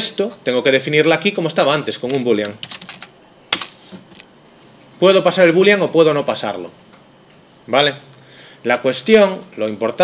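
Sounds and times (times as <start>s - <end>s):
computer keyboard keystrokes: 2.4s - 3.8s.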